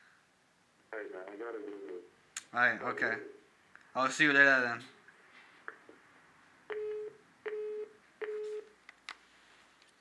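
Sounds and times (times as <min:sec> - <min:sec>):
telephone beeps: 0:06.7 - 0:08.7.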